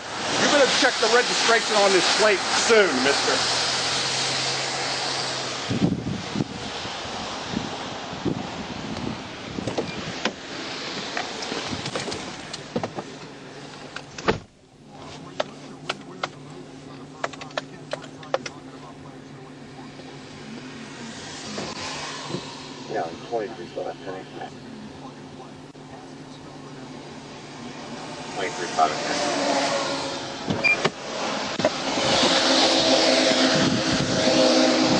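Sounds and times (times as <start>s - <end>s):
car passing: 0.0s - 13.8s, 18.0s - 34.9s
idling vehicle hum: 0.0s - 34.9s
traffic on a wet road: 0.0s - 34.9s
car door slamming: 11.7s - 13.1s, 14.2s - 14.5s, 30.4s - 31.0s.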